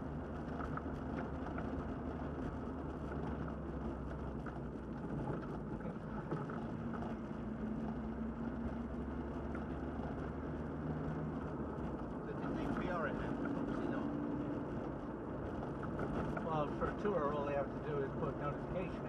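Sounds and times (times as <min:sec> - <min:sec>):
car engine droning: 0:00.0 - 0:19.0
road noise: 0:00.0 - 0:19.0.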